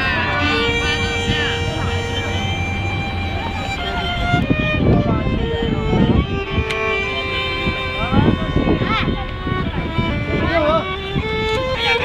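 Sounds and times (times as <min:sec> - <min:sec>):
low city rumble: 0:00.0 - 0:12.0
violin held note: 0:00.0 - 0:12.0
voices: 0:00.0 - 0:12.0.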